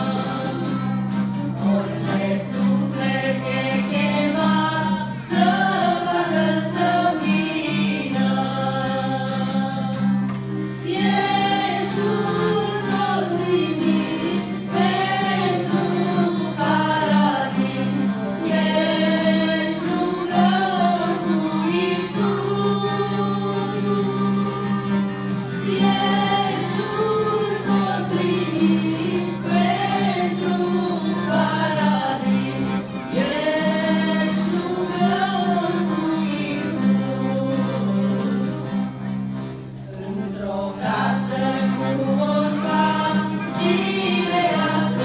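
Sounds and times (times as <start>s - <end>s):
women singing a hymn: 0.0s - 38.8s, 39.9s - 45.0s.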